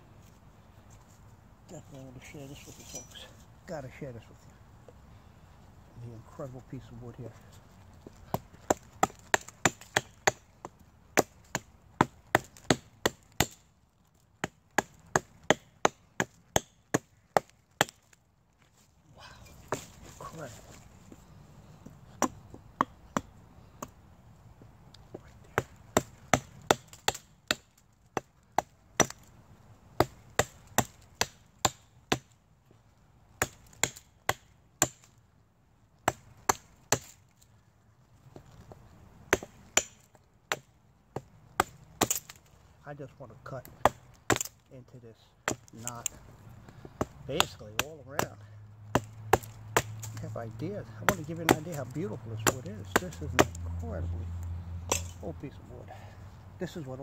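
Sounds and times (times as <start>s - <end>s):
hatchet chopping wood: 8.0s - 13.7s, 14.4s - 18.2s, 19.5s - 20.2s, 21.8s - 24.0s, 25.1s - 29.3s, 30.0s - 32.4s, 33.4s - 35.2s, 36.0s - 37.2s, 39.3s - 42.5s, 43.6s - 44.6s, 45.4s - 50.3s, 50.9s - 53.7s, 54.9s - 55.3s.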